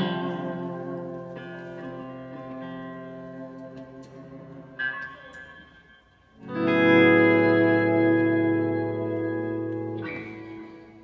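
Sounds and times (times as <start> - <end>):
electric guitar chords: 0.0 - 11.0.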